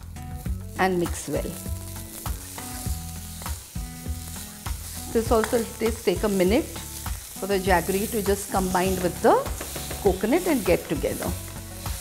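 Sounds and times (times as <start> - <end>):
light sizzle in a pan: 0.0 - 12.0
spatula knocking and scraping pan: 8.8 - 10.8.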